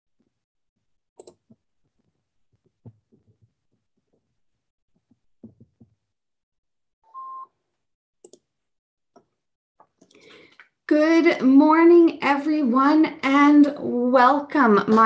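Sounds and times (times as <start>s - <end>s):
soft knocks: 5.4s - 6.0s
short electronic beep: 7.1s - 7.5s.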